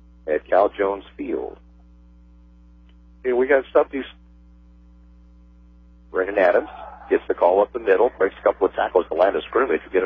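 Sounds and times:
mains hum: 0:00.0 - 0:10.0
spoken word: 0:06.2 - 0:07.4.

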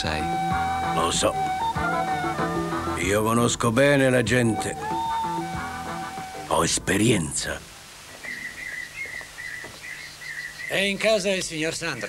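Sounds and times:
bird chirping: 0:08.1 - 0:12.0.

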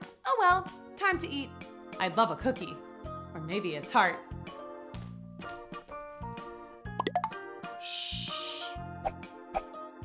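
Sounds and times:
light children's music: 0:00.0 - 0:10.0
cartoon plop sound effect: 0:07.0 - 0:07.4.

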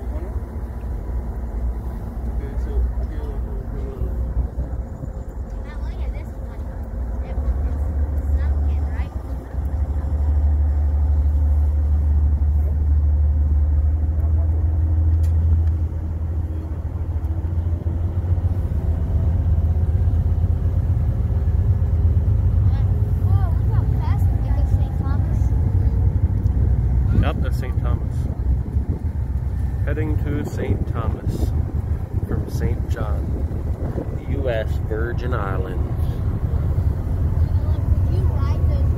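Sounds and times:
ferry engines droning: 0:00.0 - 0:38.9
wind rumble on microphone: 0:00.0 - 0:38.9.

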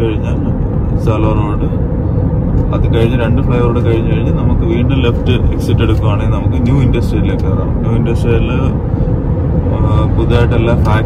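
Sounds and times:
road and engine noise in car: 0:00.0 - 0:11.0.

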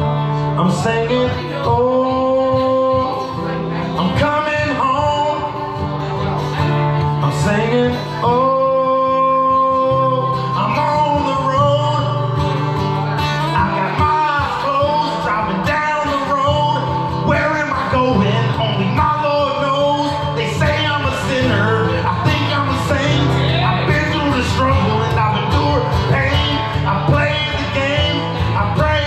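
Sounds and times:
acoustic guitar playing: 0:00.0 - 0:29.0.

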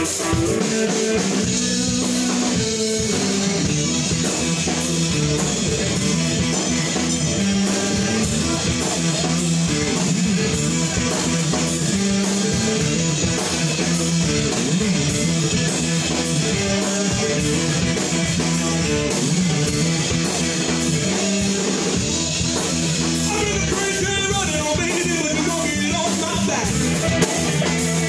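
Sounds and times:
bass guitar: 0:00.0 - 0:28.0
drums keeping steady beat: 0:00.0 - 0:28.0
electric guitar: 0:00.0 - 0:28.0.

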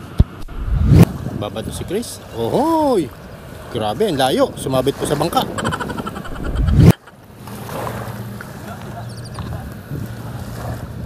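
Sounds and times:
wind on microphone: 0:00.2 - 0:02.3, 0:05.4 - 0:07.0
boat engine droning: 0:00.5 - 0:11.0
small waves washing on shore: 0:00.6 - 0:11.0.

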